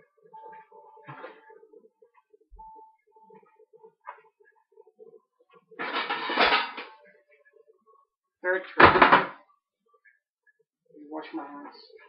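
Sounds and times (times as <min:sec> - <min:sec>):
baking tray clattering: 0:05.8 - 0:07.0.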